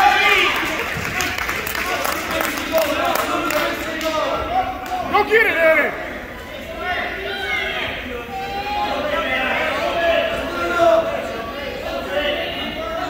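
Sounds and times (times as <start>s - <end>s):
spectators and coaches shouting: 0.0s - 13.0s.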